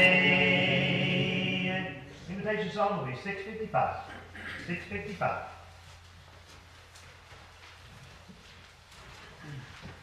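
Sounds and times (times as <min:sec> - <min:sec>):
faint footsteps on floor: 0:05.1 - 0:10.0.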